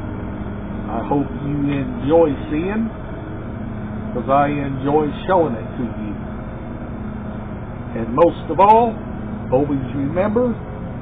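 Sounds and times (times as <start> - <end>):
background hum and hiss: 0.0 - 11.0
low droning tone: 0.0 - 11.0.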